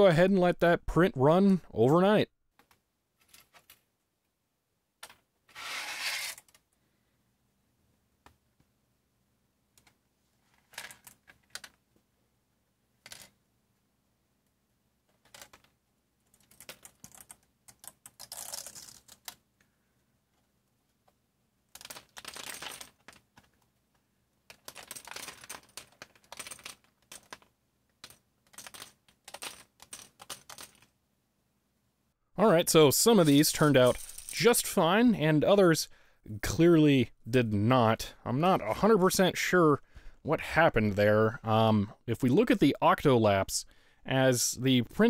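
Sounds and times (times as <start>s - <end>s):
plastic pieces clicking and clattering: 9.8s - 11.8s, 15.1s - 19.4s, 21.7s - 23.7s, 24.4s - 31.0s, 33.2s - 34.4s.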